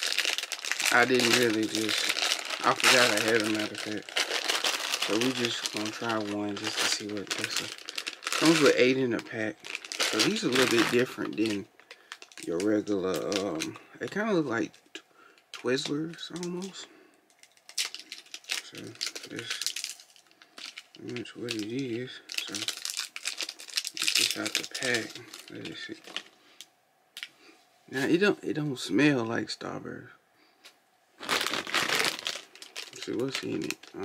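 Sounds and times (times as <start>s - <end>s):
candy wrapper crinkling: 0.0s - 16.7s, 17.3s - 26.4s, 31.2s - 34.0s.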